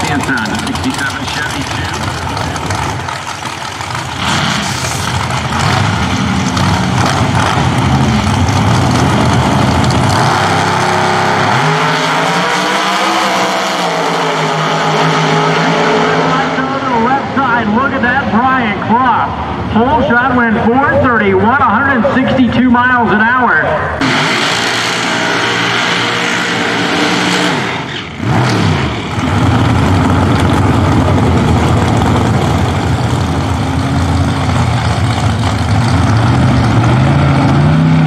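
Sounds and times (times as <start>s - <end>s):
race car engines roaring: 0.0s - 38.0s.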